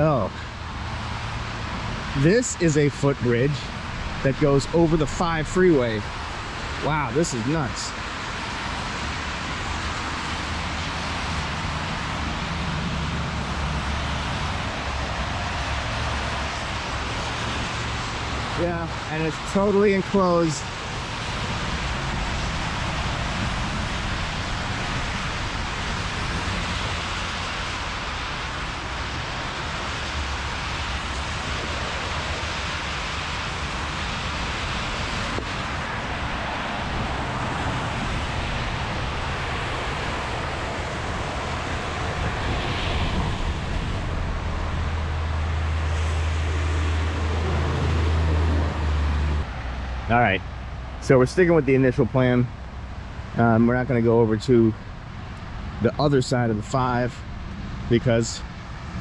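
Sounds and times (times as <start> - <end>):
tyres hissing on wet road: 0.0 - 54.0
deep rumble: 30.3 - 51.1.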